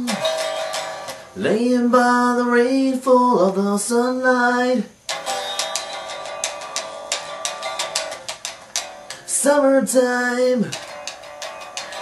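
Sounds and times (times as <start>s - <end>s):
electric guitar strumming: 0.0s - 1.6s, 5.0s - 12.0s.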